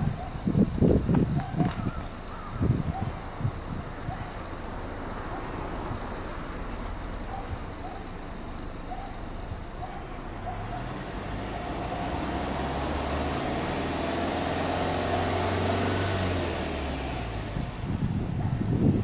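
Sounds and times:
car exhaust at raised revs: 0.0 - 19.0.

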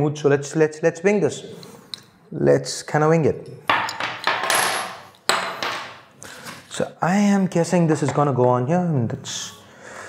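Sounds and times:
metal parts clinking on wood: 3.7 - 5.9.

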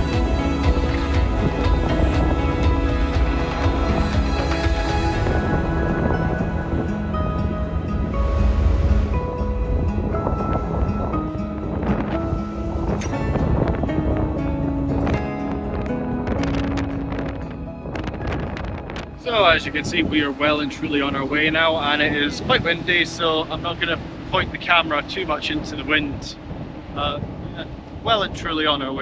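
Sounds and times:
music of held notes: 0.0 - 25.3.

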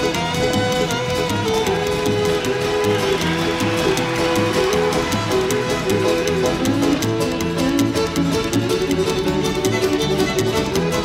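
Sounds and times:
fast bluegrass band music: 0.0 - 11.0
fiddle: 0.0 - 11.0.

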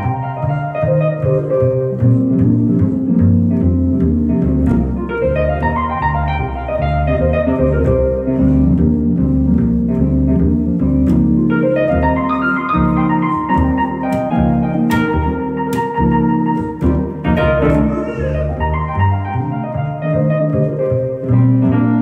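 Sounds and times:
keyboard playing piano chords: 0.0 - 22.0
plucked double bass: 0.0 - 22.0.

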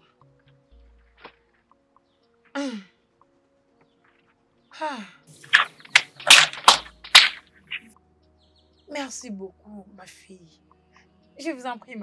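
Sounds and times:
firewood sticks cracking: 5.5 - 7.9.

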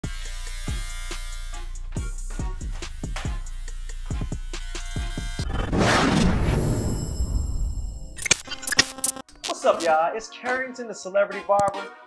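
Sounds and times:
electric hair trimmer buzzing: 0.0 - 5.5.

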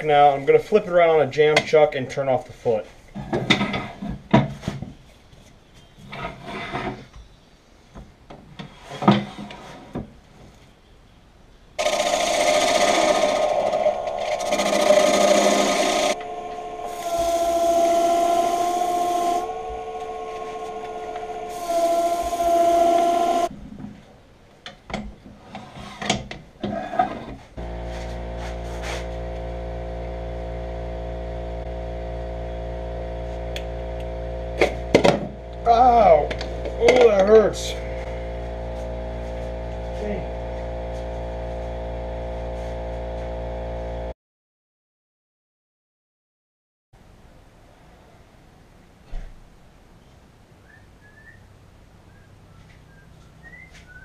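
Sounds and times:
lathe whine: 11.8 - 23.5, 27.6 - 44.1
steady hum of even tones: 11.8 - 23.5, 27.6 - 44.2
tool cutting wood on lathe: 11.8 - 23.5.

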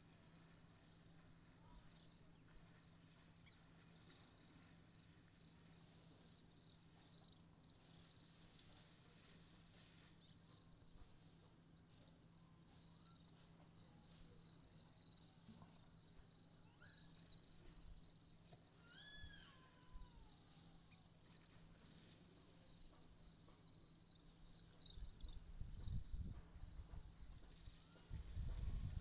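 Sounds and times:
low steady hum: 0.0 - 29.0
high chirping calls: 1.4 - 29.0.

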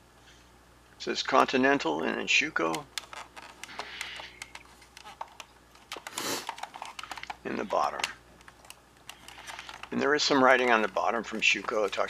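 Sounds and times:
plastic toy car clicking: 2.7 - 10.0.

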